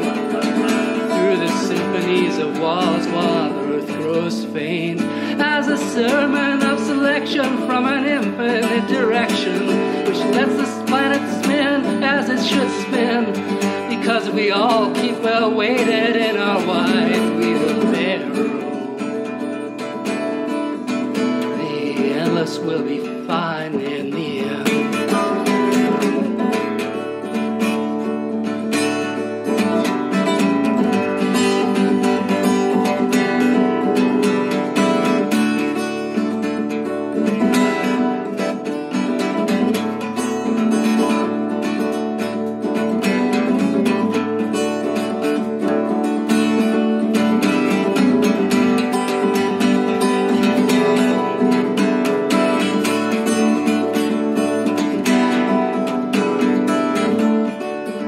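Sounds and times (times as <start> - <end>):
person singing: 0.0 - 26.8
acoustic guitar strummed and picked: 0.0 - 58.0.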